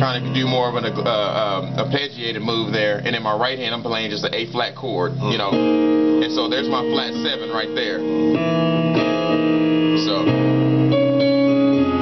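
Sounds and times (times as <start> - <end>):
piano gospel chords: 0.0 - 12.0.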